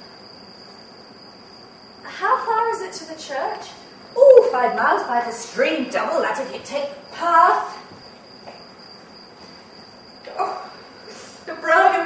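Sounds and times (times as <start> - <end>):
crickets chirring: 0.0 - 12.0
faint room noise: 0.0 - 12.0.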